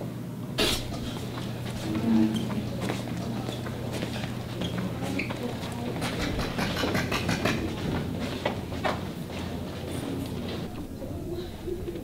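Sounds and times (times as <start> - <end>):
steady low hum: 0.5 - 12.0
footsteps on hard floor: 0.8 - 10.7.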